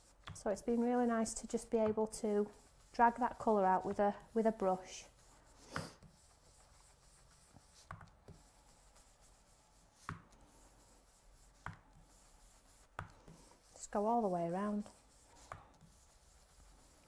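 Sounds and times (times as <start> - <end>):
faint rubbing on card: 0.0 - 17.0.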